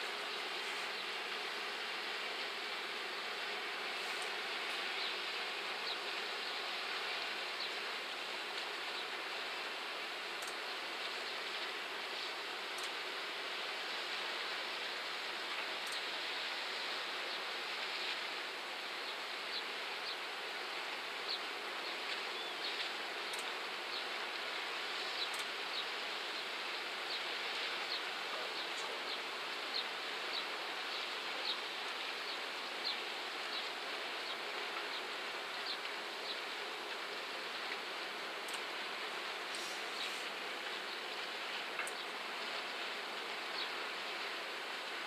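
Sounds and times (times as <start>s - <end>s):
outdoor background hiss: 0.0s - 45.0s.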